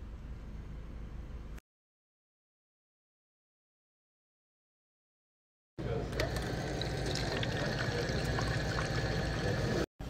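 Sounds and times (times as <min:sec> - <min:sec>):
dispenser machine humming: 0:05.8 - 0:09.9
juice pouring into paper cup: 0:06.1 - 0:09.9.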